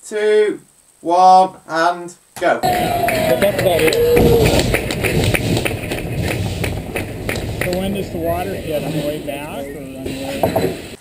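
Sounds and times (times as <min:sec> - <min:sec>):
low rumble: 0:02.6 - 0:11.0
riders clapping rhythmically: 0:02.6 - 0:11.0.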